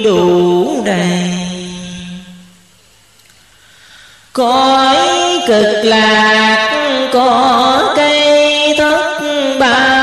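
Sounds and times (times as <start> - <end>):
person chanting scripture: 0.0 - 2.6, 4.4 - 10.0.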